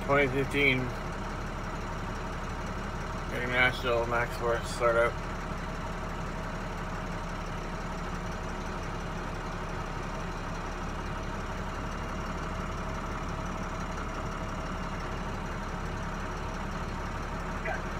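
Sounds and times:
diesel engine idling: 0:00.0 - 0:17.9.

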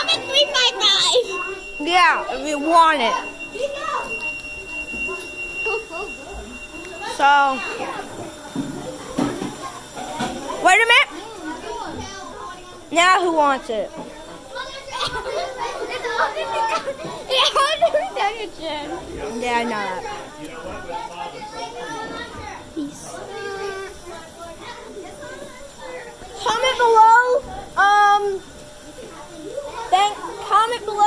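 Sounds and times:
children chattering: 0:00.0 - 0:31.0.

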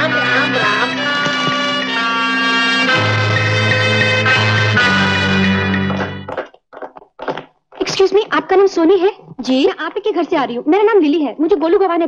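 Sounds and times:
brass band music: 0:00.0 - 0:06.3.

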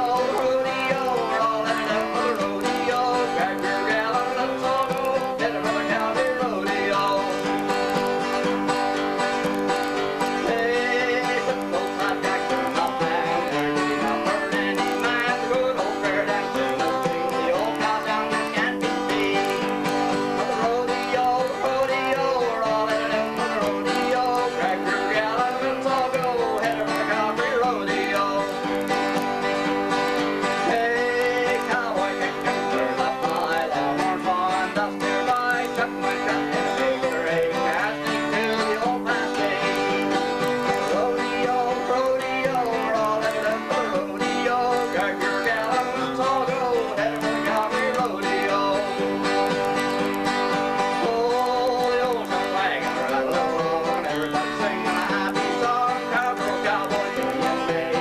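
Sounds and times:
acoustic guitars playing country tune: 0:00.0 - 0:58.0.

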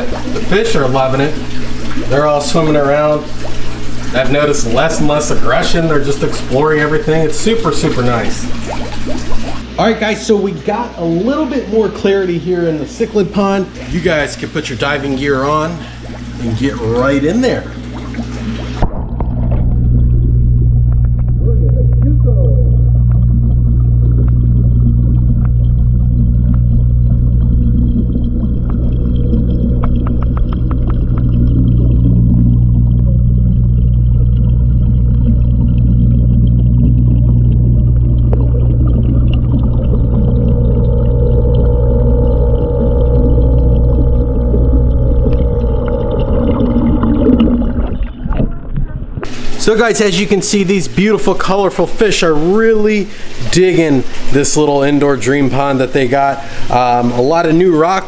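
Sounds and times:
fountain pump humming: 0:00.0 - 0:58.0.

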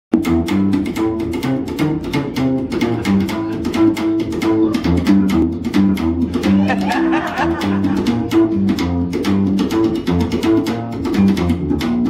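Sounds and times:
slap upright bass: 0:00.1 - 0:12.0.

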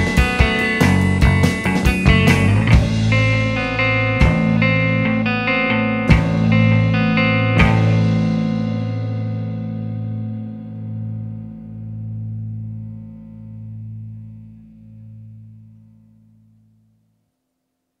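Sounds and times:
guitar chord ringing: 0:00.0 - 0:16.8.

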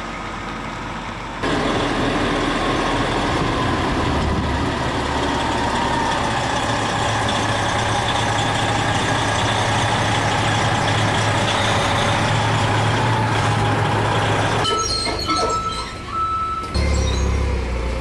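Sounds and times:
truck diesel engine idling: 0:00.0 - 0:14.6.

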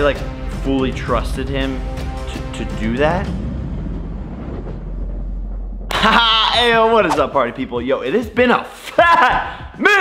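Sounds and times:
low steady rumble: 0:01.4 - 0:07.1.

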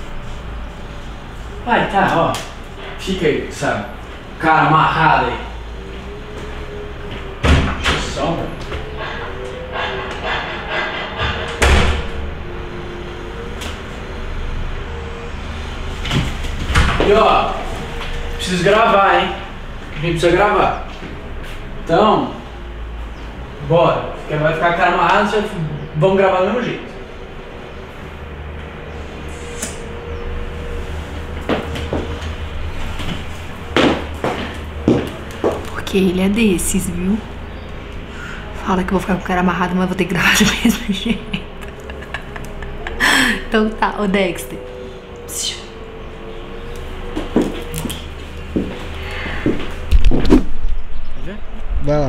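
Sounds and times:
footsteps in heeled boots: 0:33.8 - 0:35.8, 0:47.1 - 0:49.8.

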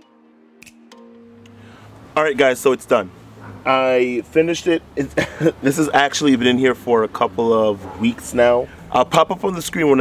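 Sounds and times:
background music held notes: 0:00.0 - 0:02.2.

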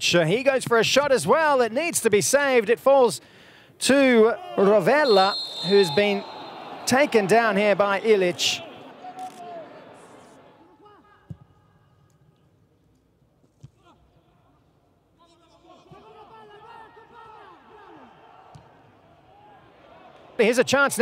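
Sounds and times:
footballers shouting: 0:04.3 - 0:10.8.

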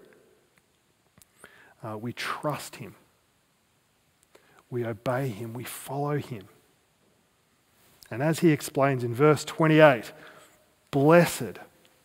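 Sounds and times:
soft breath: 0:01.3 - 0:01.8, 0:04.3 - 0:04.7, 0:10.1 - 0:10.8
faint click: 0:04.2 - 0:04.7.

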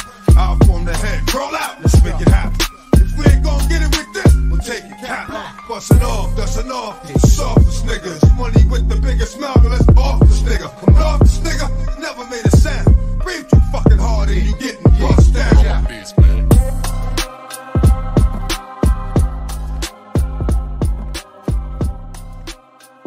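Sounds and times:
rapping over a beat: 0:00.0 - 0:23.0.

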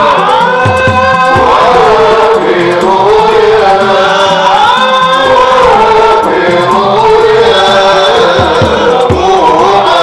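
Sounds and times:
men singing a chant: 0:00.0 - 0:10.0.

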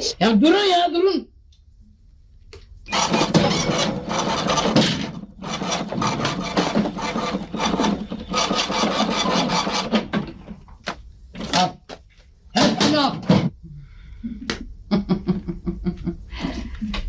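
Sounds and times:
rough rasping rubbing: 0:05.4 - 0:10.1.

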